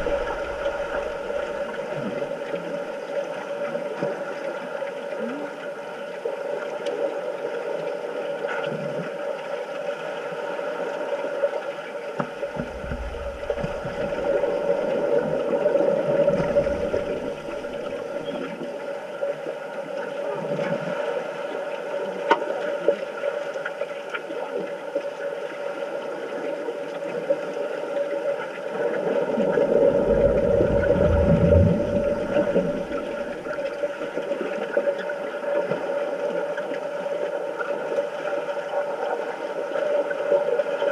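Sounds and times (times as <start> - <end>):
low rumble: 0.0 - 2.0, 12.5 - 18.2, 29.2 - 33.8
faint underwater clicks and knocks: 0.0 - 2.1, 12.2 - 18.6, 29.4 - 33.9
muffled underwater drone: 0.0 - 40.9.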